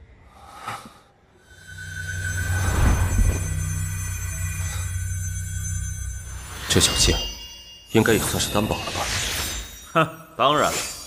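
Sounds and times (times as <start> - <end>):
steady low drone: 1.3 - 7.6
high glassy ringing shimmer: 1.4 - 11.0.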